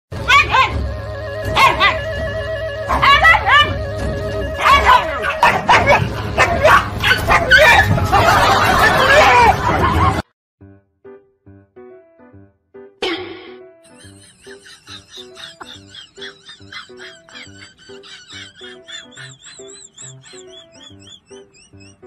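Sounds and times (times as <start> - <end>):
background music with held tones: 0.1 - 22.0
dog barking: 4.6 - 8.0.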